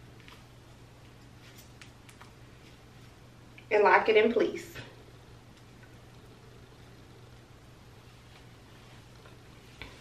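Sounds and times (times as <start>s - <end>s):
faint hair handling sounds: 0.0s - 3.4s
low steady hum: 0.0s - 10.0s.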